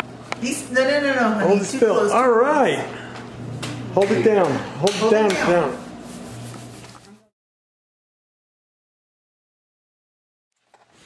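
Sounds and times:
steady low hum: 0:00.0 - 0:07.2.

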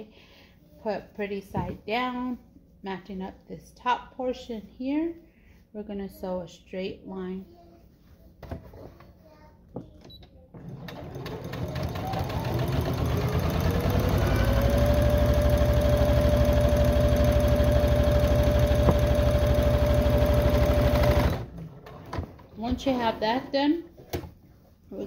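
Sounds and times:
sewing machine stitching: 0:10.6 - 0:23.0.

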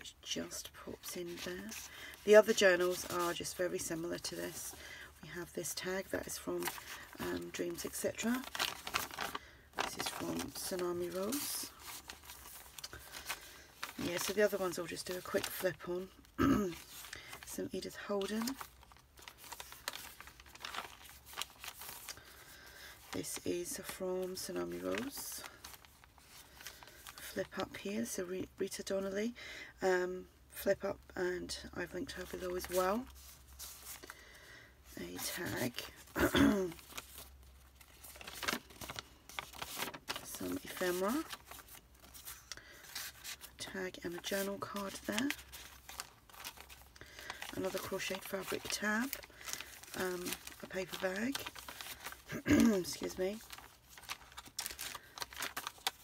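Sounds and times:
paper pages turning: 0:00.4 - 0:04.8, 0:05.7 - 0:27.6, 0:32.2 - 0:34.1, 0:35.0 - 0:56.0.

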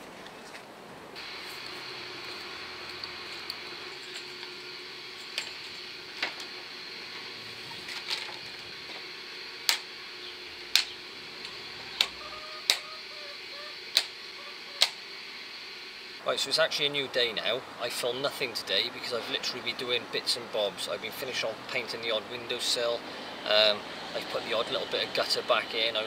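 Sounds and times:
steady background hiss: 0:00.0 - 0:26.0.

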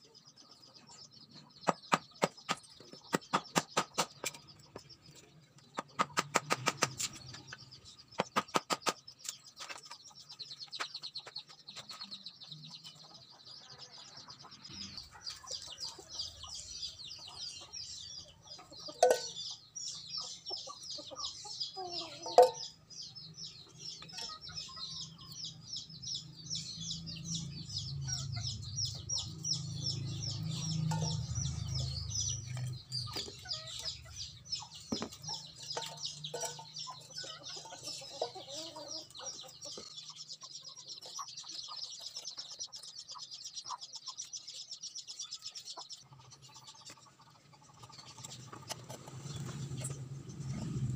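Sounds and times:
chickens clucking: 0:00.0 - 0:50.9.

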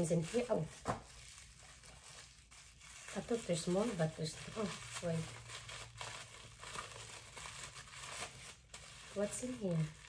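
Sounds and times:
paper wrapping crinkling: 0:00.0 - 0:10.0.

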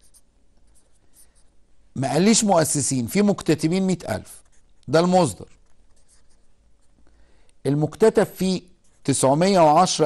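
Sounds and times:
marker drawing on whiteboard: 0:00.0 - 0:01.6, 0:03.4 - 0:07.0, 0:08.0 - 0:09.8.

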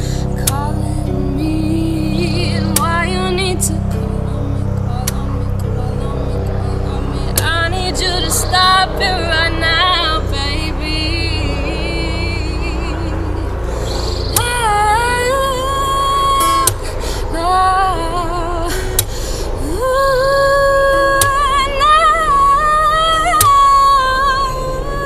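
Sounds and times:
acoustic guitar: 0:00.0 - 0:25.0
woman singing: 0:00.0 - 0:25.0.

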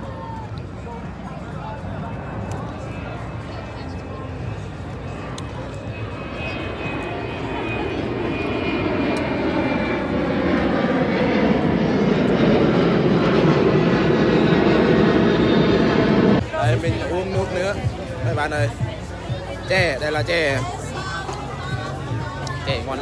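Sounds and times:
airliner flying low overhead: 0:00.0 - 0:23.0
faint crowd chatter: 0:00.0 - 0:23.0.

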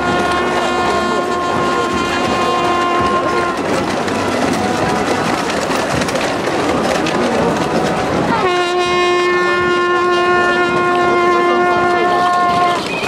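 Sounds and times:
horn blowing long note: 0:00.0 - 0:05.5, 0:07.5 - 0:12.9
marching crowd noise: 0:00.0 - 0:13.0.

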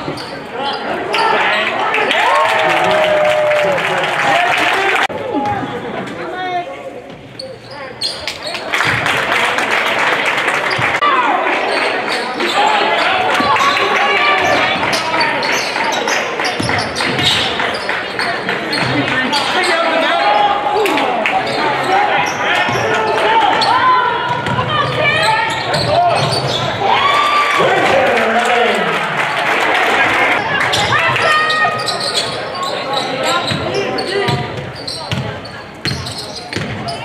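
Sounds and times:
players and spectators calling out: 0:00.0 - 0:37.0.

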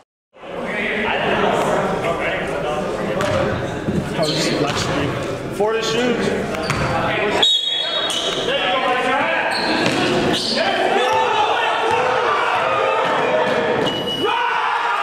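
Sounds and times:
echoing voices: 0:00.4 - 0:15.0
basketball bouncing on gym floor: 0:03.2 - 0:03.6, 0:06.6 - 0:07.0, 0:09.8 - 0:10.2.

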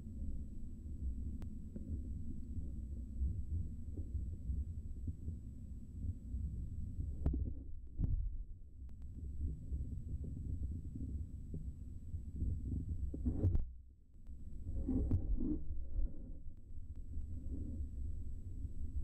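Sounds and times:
muffled underwater water rumble: 0:00.0 - 0:19.0.

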